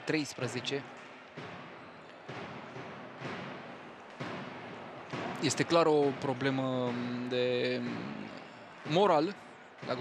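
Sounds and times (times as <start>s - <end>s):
indoor crowd murmur: 0.0s - 10.0s.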